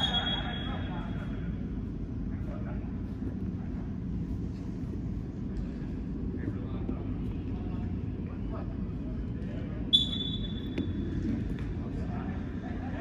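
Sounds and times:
low arena rumble: 0.0 - 13.0.

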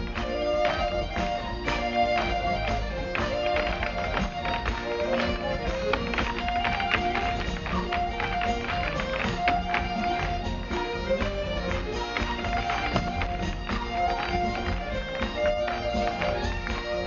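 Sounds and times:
bagpipes with drone: 0.0 - 17.0
hard-shoe dance taps on stage: 0.0 - 17.0.

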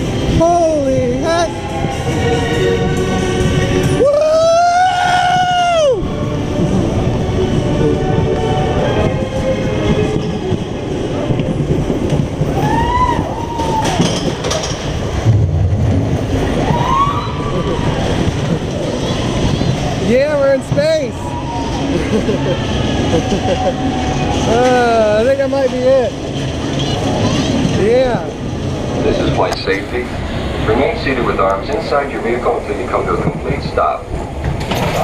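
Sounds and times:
roller coaster running on track: 0.0 - 35.0.

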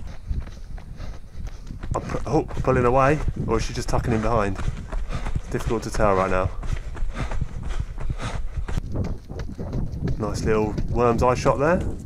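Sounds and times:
running footsteps on gravel: 0.0 - 12.0
wind rumble on microphone: 0.0 - 12.0.

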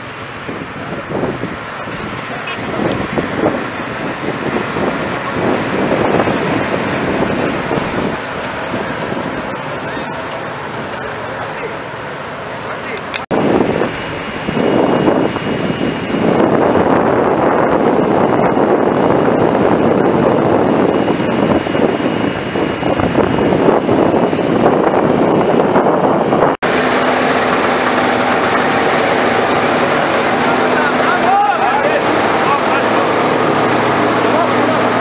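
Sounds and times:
combine harvester running: 0.0 - 35.0.

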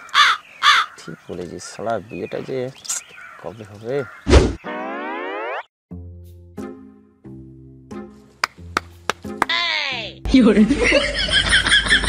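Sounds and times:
rising boing sound effect: 4.6 - 5.7.

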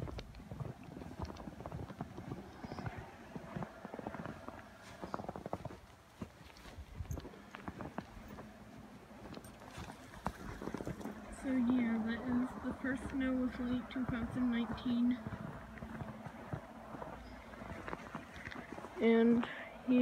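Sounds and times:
footsteps crunching in snow: 0.0 - 19.4.

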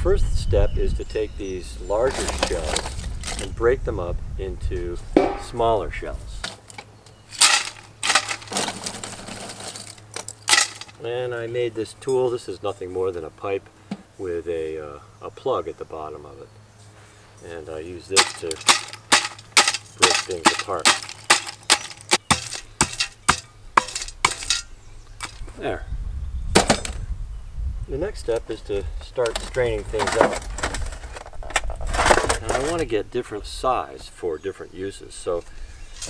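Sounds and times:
oyster shells cracking: 7.4 - 11.0, 18.2 - 25.4.

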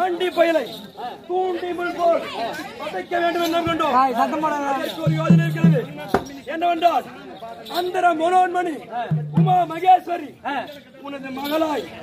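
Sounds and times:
overlapping voices talking: 2.0 - 10.4.

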